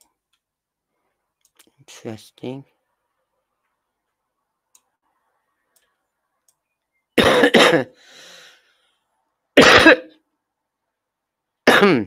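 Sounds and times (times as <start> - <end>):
person coughing: 7.2 - 8.0, 9.6 - 10.2, 11.7 - 12.0.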